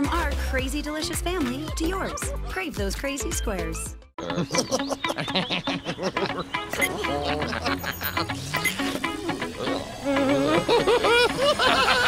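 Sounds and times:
squeaky cartoon voices chattering: 3.2 - 5.8, 6.6 - 10.6
cartoon voices giggling: 4.2 - 8.5, 9.2 - 12.0.

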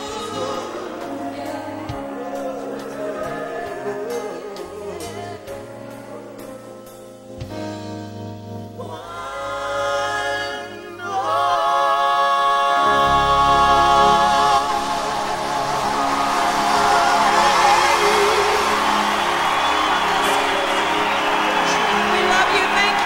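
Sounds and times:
vocal group singing in harmony: 0.0 - 7.3, 8.7 - 23.0
live band playing: 13.1 - 23.0.

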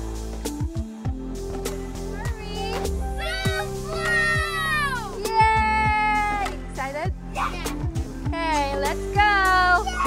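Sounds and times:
pop music with bass: 0.0 - 10.0.

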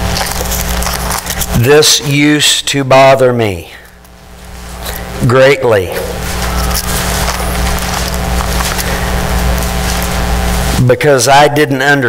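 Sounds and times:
steady hiss: 0.0 - 11.7
low electrical hum: 0.0 - 12.0
faint crackle: 6.1 - 10.8.

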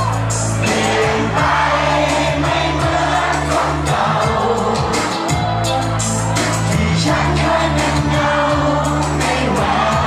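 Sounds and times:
bass-heavy backing track: 0.0 - 10.0.

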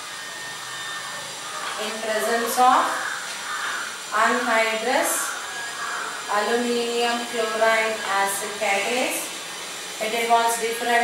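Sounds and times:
voice: 1.8 - 3.0, 4.1 - 5.3, 6.3 - 9.3, 10.0 - 11.0.

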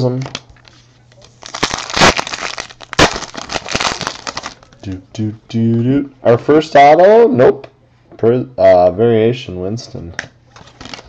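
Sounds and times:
foil wrapper tearing and crinkling: 1.4 - 4.7, 10.7 - 11.0.

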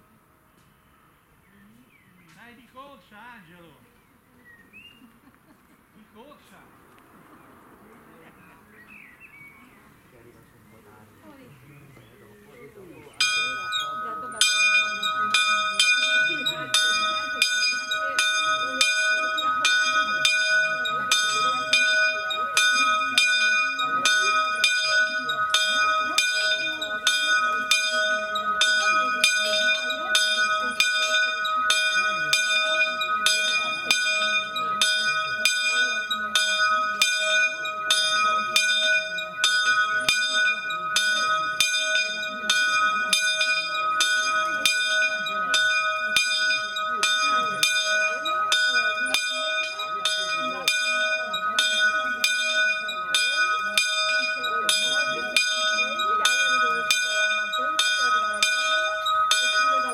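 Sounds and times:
church bell ringing: 13.2 - 59.9.

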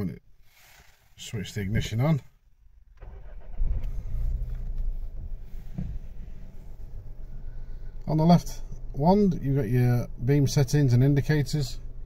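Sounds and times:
car engine starting and idling: 0.4 - 12.0.

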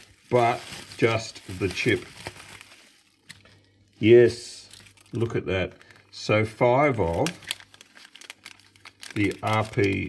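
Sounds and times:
bubble wrap and plastic bag crinkling: 0.0 - 10.0.

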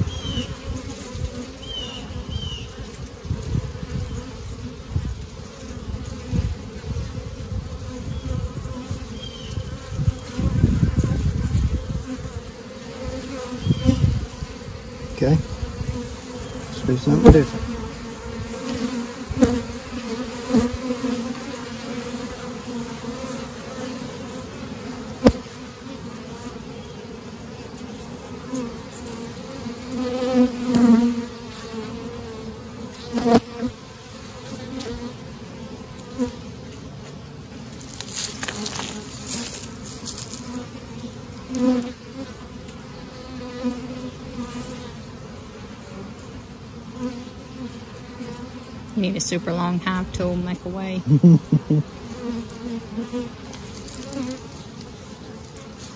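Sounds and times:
honeybees buzzing: 0.0 - 55.9.

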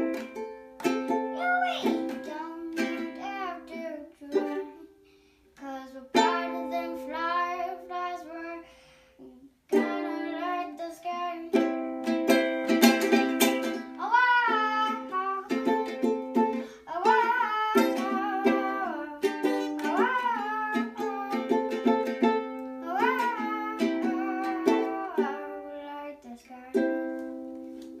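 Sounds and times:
ukulele strummed chords: 0.0 - 4.9, 6.1 - 8.0, 9.7 - 28.0
child singing: 1.0 - 4.9, 5.6 - 12.2, 12.9 - 27.4.

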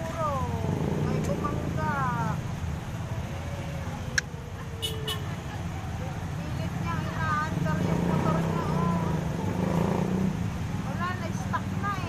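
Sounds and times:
people talking: 0.0 - 2.4, 3.4 - 9.4, 10.8 - 12.0
motorcycle and vehicle engines: 0.0 - 12.0.

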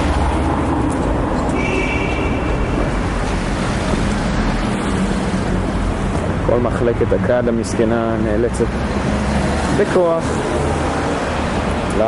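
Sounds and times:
street traffic engines: 0.0 - 12.0.

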